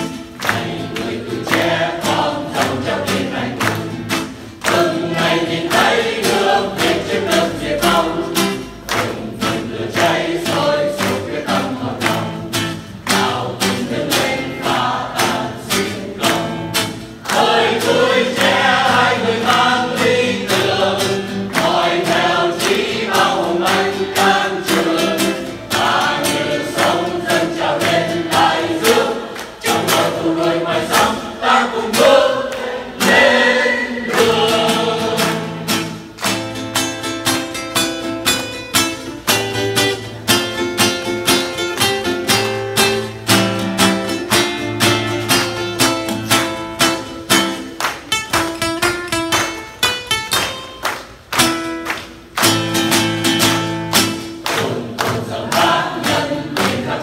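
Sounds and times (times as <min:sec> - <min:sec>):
mixed choir singing: 0:00.0 - 0:36.2, 0:54.3 - 0:57.0
strummed acoustic guitar: 0:00.0 - 0:57.0.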